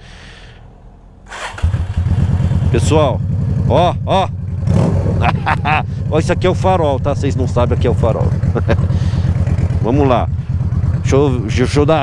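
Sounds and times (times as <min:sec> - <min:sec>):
motorcycle electric starter cranking: 0:01.3 - 0:02.2
motorcycle engine idling: 0:01.6 - 0:12.0.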